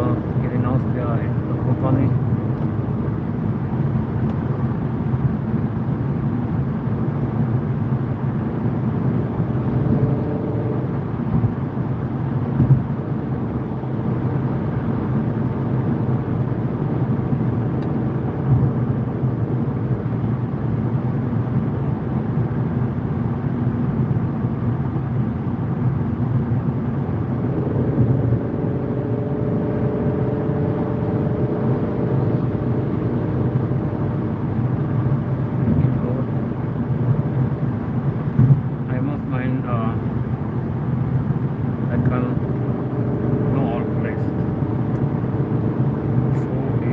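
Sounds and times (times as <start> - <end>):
car road and engine rumble: 0.0 - 46.9.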